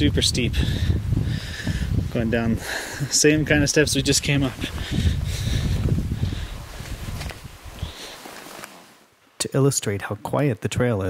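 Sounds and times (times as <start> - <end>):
footsteps on stone steps: 4.4 - 8.8.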